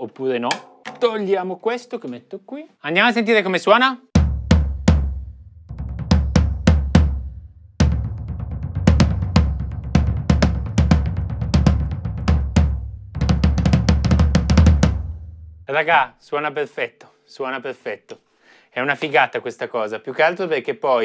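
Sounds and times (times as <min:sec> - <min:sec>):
floor tom drum strokes: 0:04.2 - 0:15.4.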